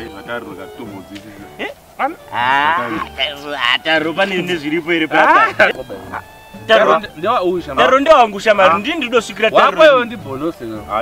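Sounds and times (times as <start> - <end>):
men talking: 0.0 - 11.0
drawn-out exclamation: 1.6 - 4.2, 5.0 - 7.2, 7.8 - 9.9.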